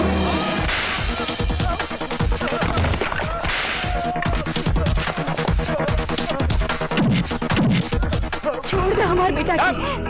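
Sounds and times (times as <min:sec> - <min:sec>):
action music with pounding beat: 0:00.0 - 0:09.0.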